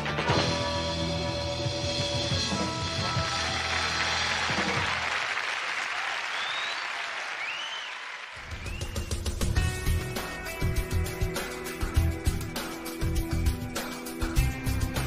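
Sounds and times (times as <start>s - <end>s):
rock band playing: 0.0s - 5.1s, 8.5s - 15.0s
audience applause and cheering: 2.9s - 10.0s
short whistles: 6.3s - 9.4s
guitar music: 9.6s - 15.0s.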